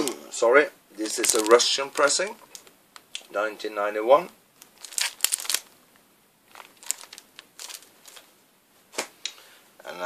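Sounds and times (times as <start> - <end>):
record sleeves rustling: 1.0 - 3.2, 4.1 - 5.8, 6.4 - 9.2.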